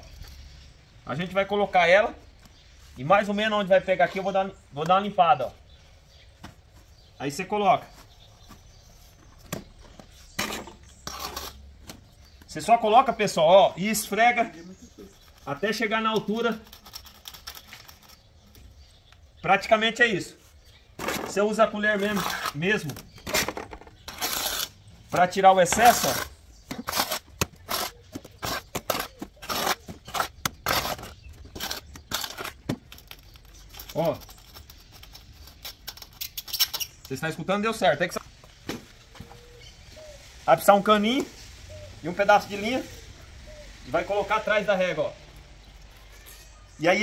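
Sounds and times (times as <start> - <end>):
metal rule scraping brick: 10.4 - 11.7, 21.0 - 37.3.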